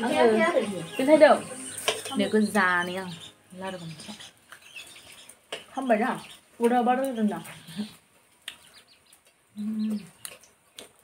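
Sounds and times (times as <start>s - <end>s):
faint bird chirps: 0.2s - 6.5s, 7.1s - 10.6s
woman humming: 9.6s - 10.2s.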